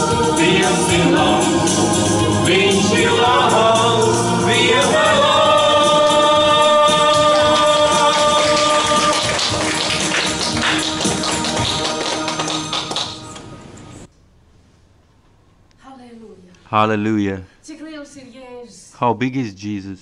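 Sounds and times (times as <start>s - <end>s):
male and female voices singing: 0.0s - 9.9s
accompaniment with a beat: 0.0s - 13.4s.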